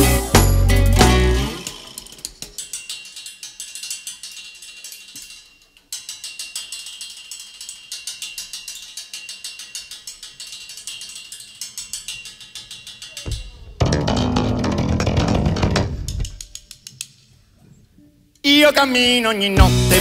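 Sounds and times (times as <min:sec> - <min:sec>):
fast mechanical ticking: 0:01.2 - 0:17.2.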